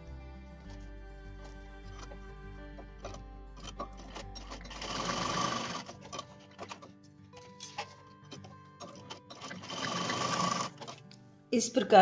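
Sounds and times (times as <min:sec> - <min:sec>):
sewing machine running: 0:03.0 - 0:06.9, 0:08.8 - 0:11.0.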